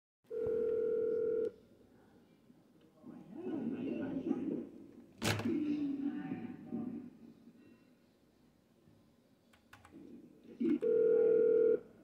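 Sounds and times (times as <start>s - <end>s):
telephone call tone: 0.3s - 1.6s, 10.6s - 12.0s.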